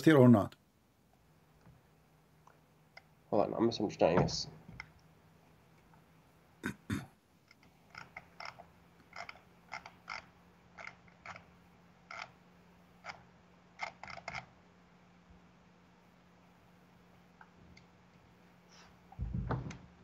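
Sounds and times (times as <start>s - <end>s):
steady low hum: 0.0s - 20.0s
loud knocks: 19.2s - 19.8s.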